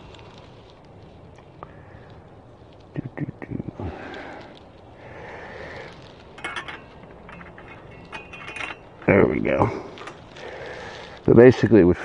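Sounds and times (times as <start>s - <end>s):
light metal clicks and clinks: 5.6s - 11.3s.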